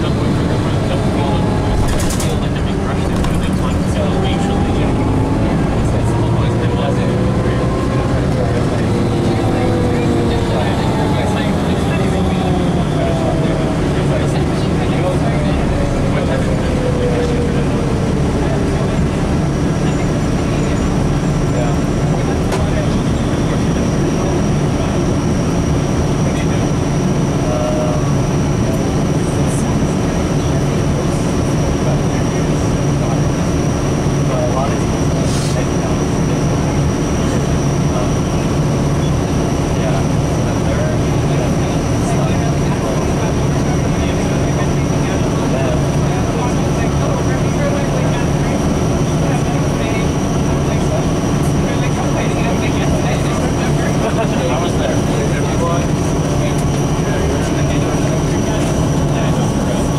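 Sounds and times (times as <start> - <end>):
bus engine drone: 0.0 - 59.9.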